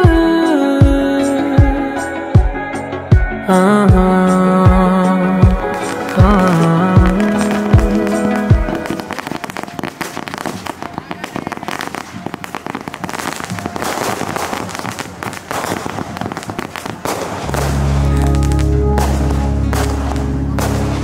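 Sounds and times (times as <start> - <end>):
music with heavy bass: 0.0 - 9.2, 17.1 - 21.0
fireworks crackling and popping: 5.4 - 21.0.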